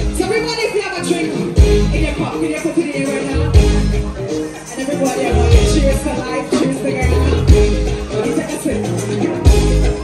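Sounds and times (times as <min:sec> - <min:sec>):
live band through outdoor pa: 0:00.0 - 0:10.0.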